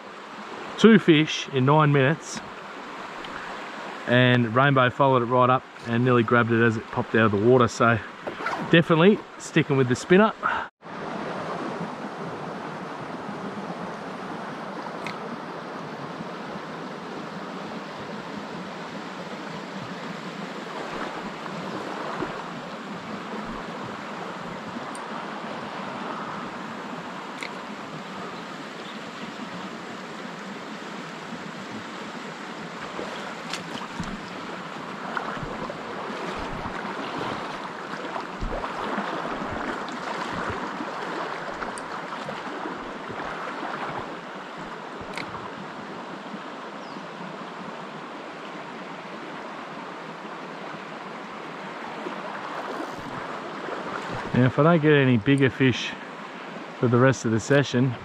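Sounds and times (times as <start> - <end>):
creek rushing over rocks: 0.0 - 58.0.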